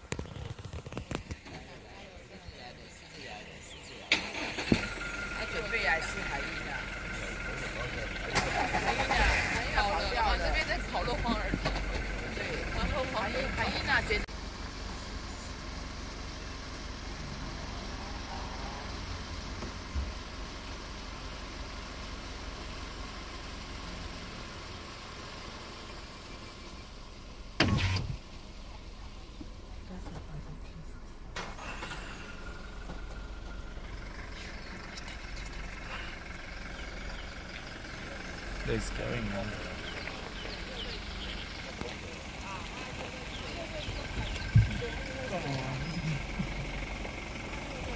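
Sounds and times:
vehicle engine idling: 0.0 - 47.9.

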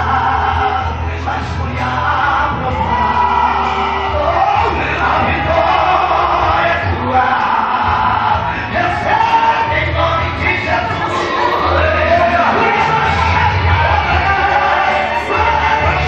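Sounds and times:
instrumental backing with bass: 0.0 - 16.0
man singing gospel into microphone: 0.0 - 16.0.

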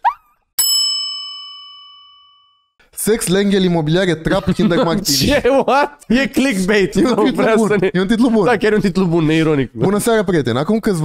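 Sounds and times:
bright bell ding: 0.6 - 2.7.

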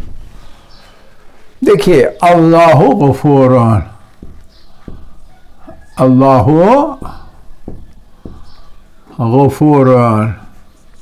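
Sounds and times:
marker writing on whiteboard: 3.2 - 9.2
soft taps: 4.1 - 6.0, 7.0 - 9.2.

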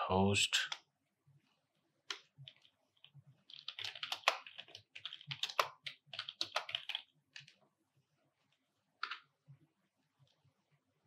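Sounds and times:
typing on computer keyboard: 2.1 - 7.6.

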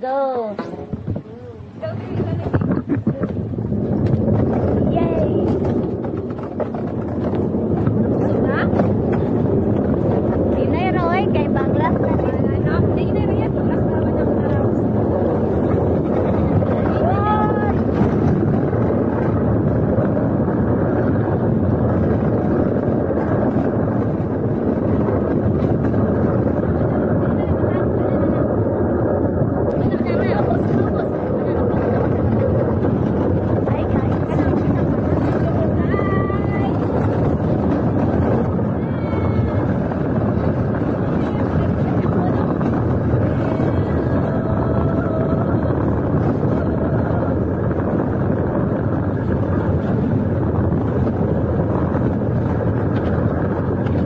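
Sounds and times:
cart wheels rumbling on asphalt: 0.0 - 54.0
wind buffeting microphone: 0.0 - 54.0.

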